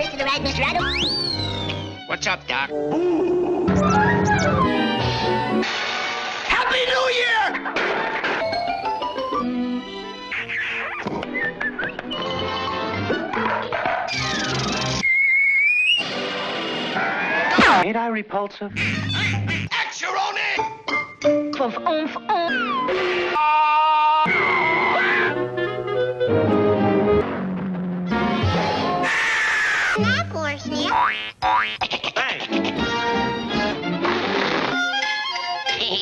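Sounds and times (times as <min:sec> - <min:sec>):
orchestral music: 0:03.7 - 0:06.5
high whistle rising in pitch: 0:15.0 - 0:16.2.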